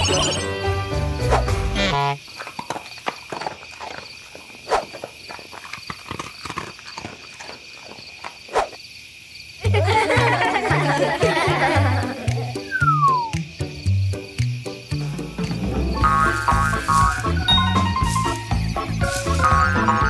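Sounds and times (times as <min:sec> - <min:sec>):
cartoon music: 0:00.0 - 0:02.2, 0:09.7 - 0:20.0
high insect-like chirring: 0:00.0 - 0:20.0.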